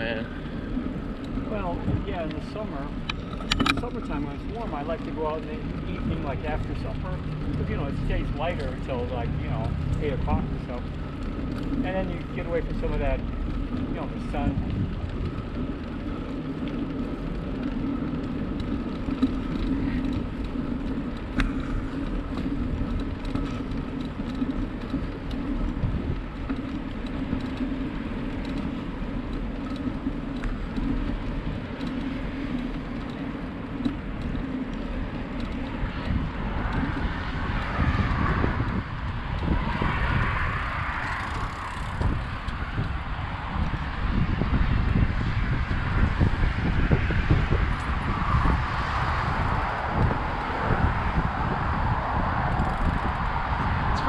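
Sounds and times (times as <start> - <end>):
wind on microphone: 0.0 - 33.2, 33.8 - 54.0
bicycle tyre and drivetrain hum: 0.0 - 54.0
low rumble: 0.0 - 54.0.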